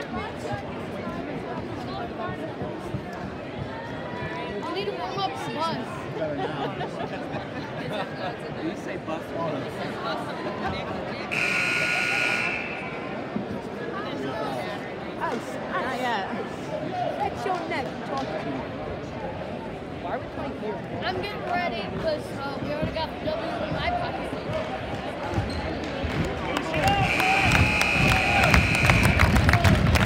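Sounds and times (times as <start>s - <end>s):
crowd chatter: 0.0s - 30.0s
scoreboard buzzer blare: 11.3s - 13.1s, 26.8s - 29.4s.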